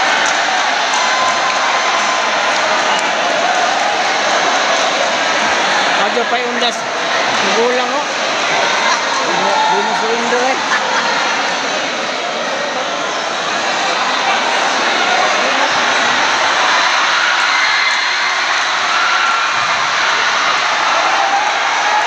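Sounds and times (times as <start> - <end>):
crowd shouting and talking: 0.0 - 22.0.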